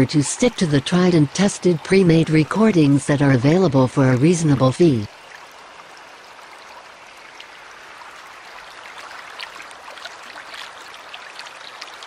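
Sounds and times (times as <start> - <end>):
faint water splashes: 0.0 - 12.0
water falling over rocks: 4.2 - 12.0.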